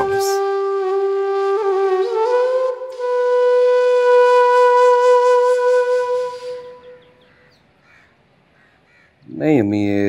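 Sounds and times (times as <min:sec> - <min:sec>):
held flute note: 0:00.0 - 0:07.2
crow cawing: 0:06.9 - 0:09.3.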